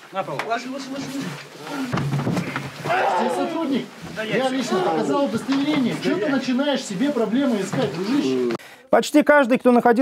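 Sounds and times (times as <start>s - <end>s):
people shouting: 2.8s - 3.7s.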